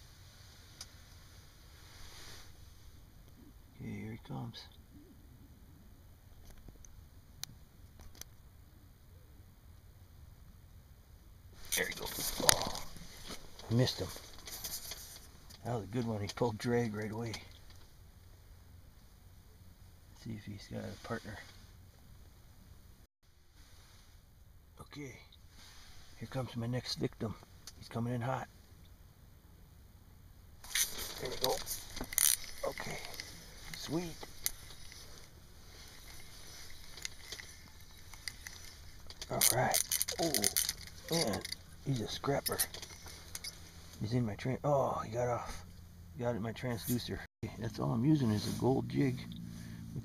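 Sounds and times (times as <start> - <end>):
faint low rumble: 0.0 - 50.0
faint small clicks: 6.4 - 8.4
rustling handling noise: 11.6 - 15.7, 30.6 - 44.0.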